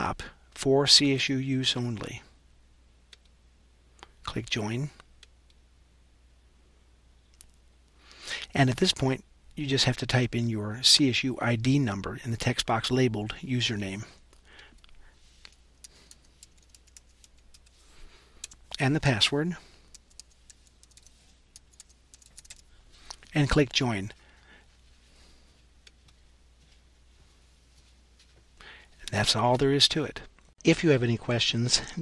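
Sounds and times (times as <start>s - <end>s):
faint low hum: 0.0s - 32.0s.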